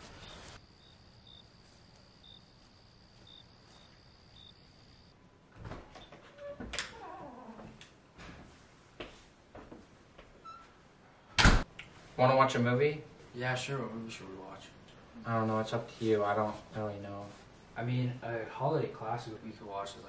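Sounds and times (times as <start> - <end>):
crickets trilling: 0.0 - 5.2
door opening and closing: 5.5 - 8.4, 11.4 - 11.7.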